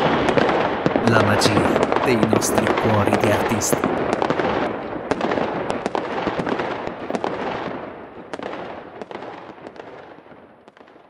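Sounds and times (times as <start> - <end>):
fireworks crackling: 0.0 - 7.8.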